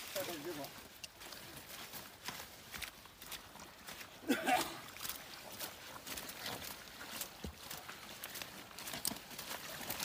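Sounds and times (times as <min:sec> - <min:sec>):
boots squelching in mud: 0:00.0 - 0:10.0
plant stalks crackling: 0:00.0 - 0:10.0.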